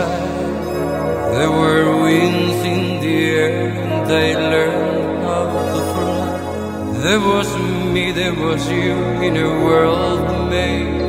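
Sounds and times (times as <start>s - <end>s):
held accompanying chords: 0.0s - 11.0s
person singing: 0.0s - 11.0s.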